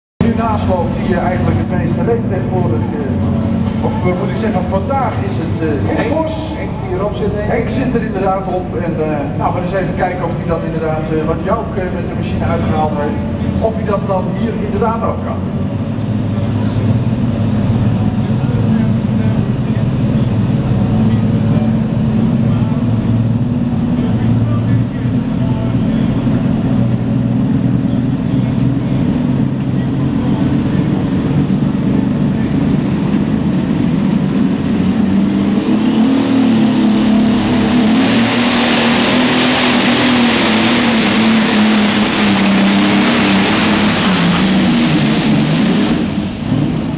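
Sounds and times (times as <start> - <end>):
high-pitched whine: 0.2 - 46.9
tractor engine running: 0.2 - 46.9.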